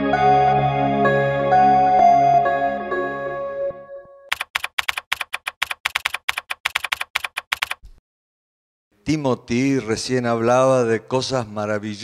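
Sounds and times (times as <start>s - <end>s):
computer keyboard typing: 4.3s - 7.8s.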